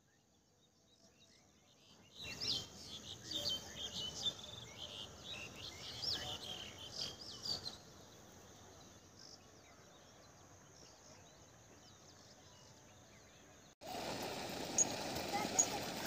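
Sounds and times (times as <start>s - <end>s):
faint outdoor background: 0.0s - 16.0s.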